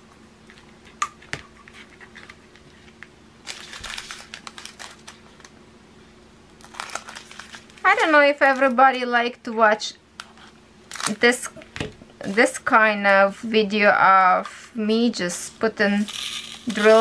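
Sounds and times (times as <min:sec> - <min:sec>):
small plastic bags crinkling: 0:03.4 - 0:05.6, 0:06.6 - 0:09.1, 0:10.8 - 0:11.3.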